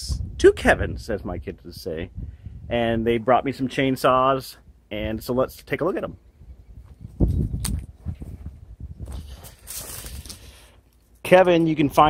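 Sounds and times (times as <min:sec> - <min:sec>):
footsteps on gravel: 0:06.9 - 0:10.8.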